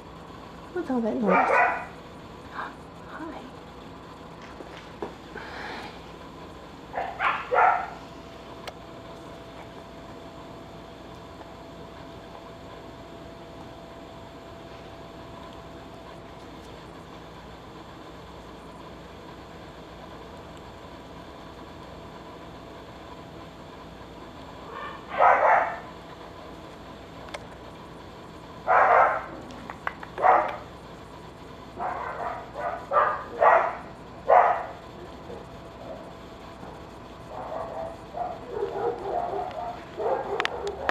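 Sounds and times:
dog barking: 0:01.2 - 0:02.0, 0:06.9 - 0:08.0, 0:24.7 - 0:25.9, 0:28.7 - 0:29.4, 0:30.2 - 0:30.6, 0:31.8 - 0:34.8, 0:37.3 - 0:40.9.

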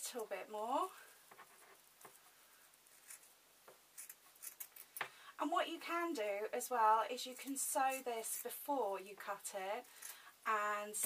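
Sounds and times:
scissors cutting fabric: 0:07.2 - 0:08.6.

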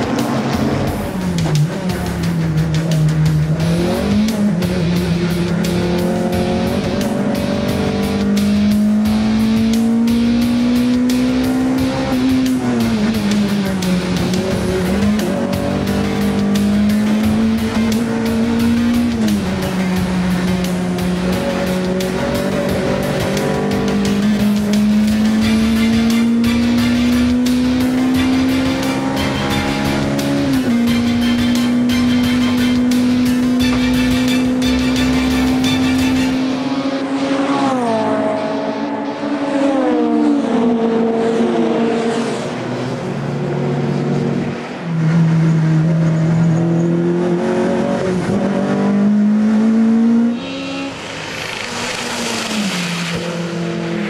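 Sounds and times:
race car engine under load: 0:00.0 - 0:54.0.

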